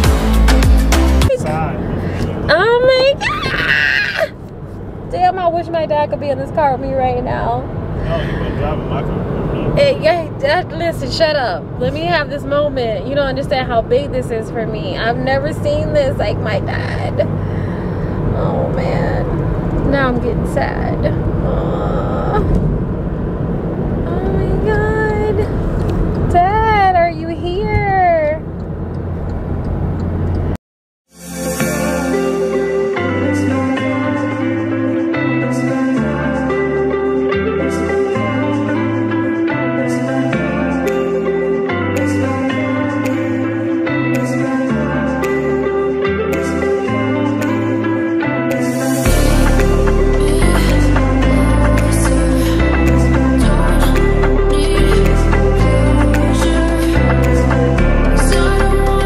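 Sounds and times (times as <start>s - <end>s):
background music: 0.0s - 3.6s, 9.8s - 19.2s, 31.2s - 59.0s
car road noise: 0.0s - 30.6s, 31.6s - 59.0s
person exclaiming: 3.0s - 4.4s.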